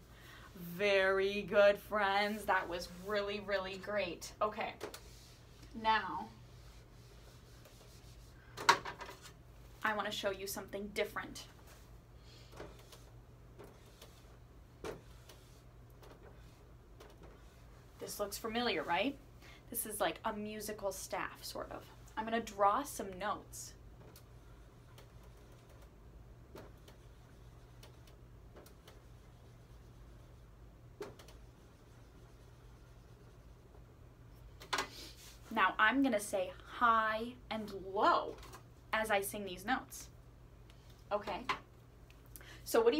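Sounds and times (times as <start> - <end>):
low room hum: 0.0 - 42.9
eraser rubbing on a whiteboard: 4.9 - 8.4, 31.4 - 33.6.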